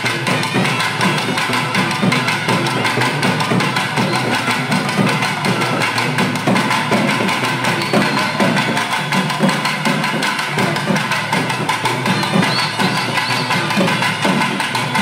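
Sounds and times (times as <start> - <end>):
barrel drums beaten with sticks: 0.0 - 15.0.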